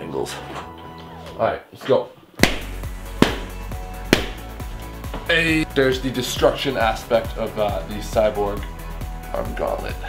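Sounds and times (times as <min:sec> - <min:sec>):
background music: 0:00.0 - 0:10.0
balloons popping: 0:02.4 - 0:04.5.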